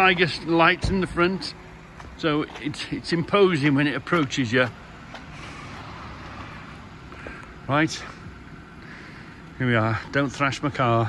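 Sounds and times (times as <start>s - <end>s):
car rolling slowly: 0.0s - 11.0s.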